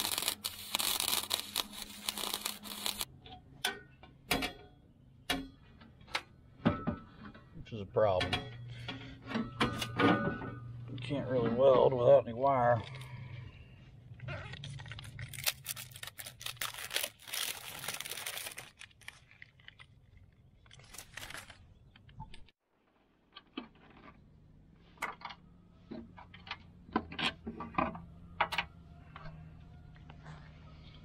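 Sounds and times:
packaging rustling and tearing: 0.0 - 3.1, 14.6 - 21.8.

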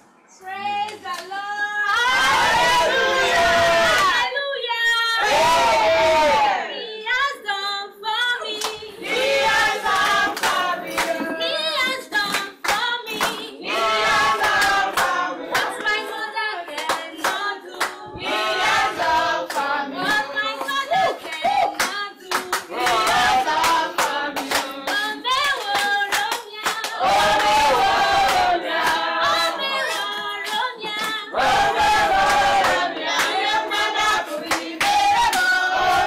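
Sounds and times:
congregation singing: 1.8 - 4.4, 8.4 - 12.2, 13.1 - 36.0
hand clapping to the beat: 8.5 - 36.0.

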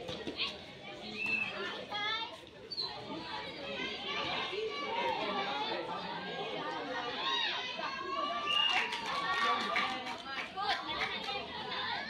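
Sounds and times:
girls shouting and chattering: 0.0 - 12.0.

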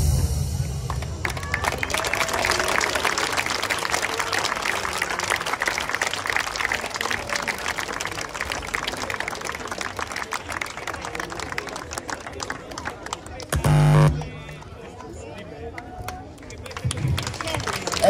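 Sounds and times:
audience applauding: 0.9 - 15.1, 15.7 - 18.0.

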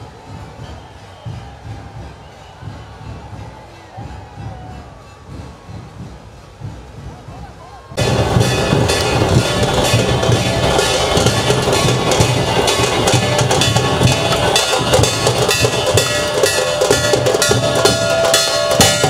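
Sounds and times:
drums played fast: 0.0 - 19.0.

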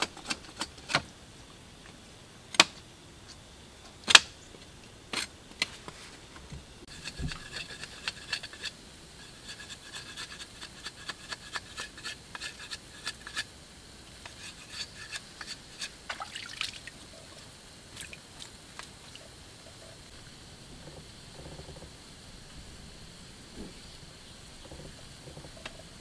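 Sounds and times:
machete scraping a stick: 6.9 - 13.5, 14.2 - 16.1.

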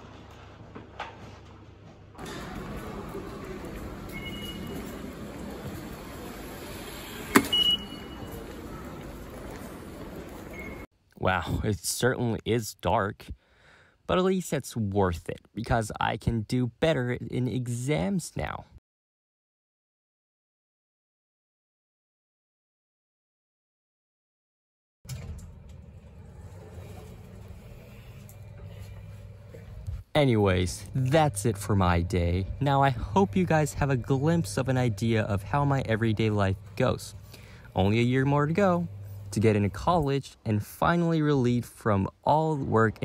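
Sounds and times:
high electronic beep: 4.1 - 4.8, 7.5 - 8.3
low outdoor rumble: 25.1 - 43.0.

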